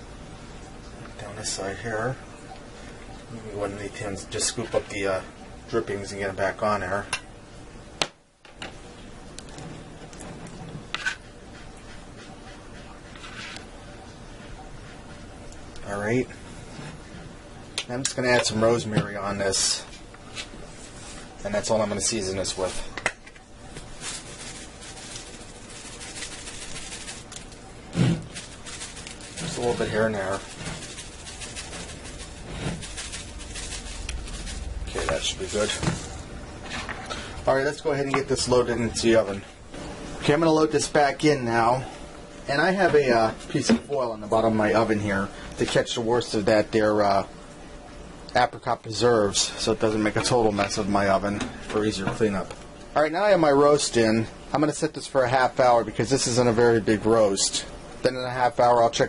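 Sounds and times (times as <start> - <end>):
low steady hum: 0.0 - 59.0
herbs rattling in plastic jar: 23.9 - 27.6, 28.2 - 36.1.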